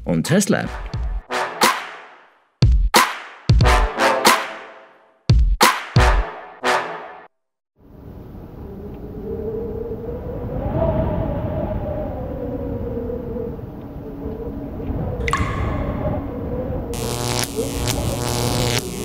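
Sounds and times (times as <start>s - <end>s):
dark synthesized drone: 14.2s - 19.0s
crackling electric zaps: 16.9s - 19.0s.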